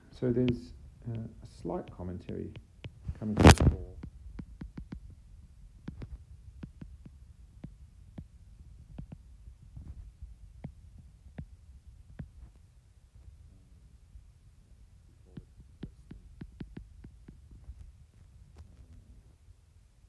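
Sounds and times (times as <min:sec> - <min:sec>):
faint low hum: 0:00.0 - 0:20.0
stylus tapping on glass screen: 0:00.4 - 0:09.2, 0:15.4 - 0:17.8.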